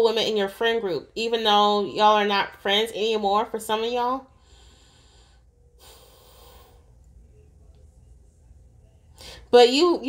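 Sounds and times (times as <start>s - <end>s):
low steady room hum: 0.0s - 10.0s
faint breath drawn in: 4.4s - 7.0s.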